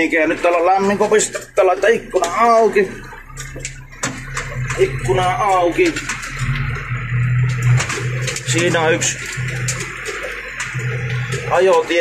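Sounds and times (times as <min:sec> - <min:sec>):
machine knocks and rattles: 0:00.0 - 0:12.0
tractor engine droning: 0:00.0 - 0:12.0.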